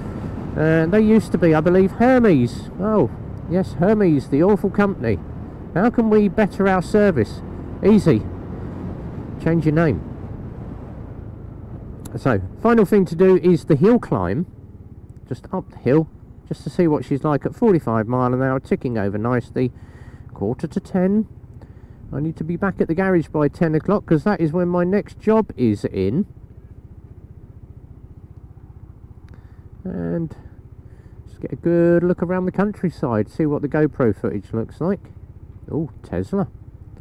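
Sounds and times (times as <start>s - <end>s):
scooter road rumble: 0.0s - 37.0s.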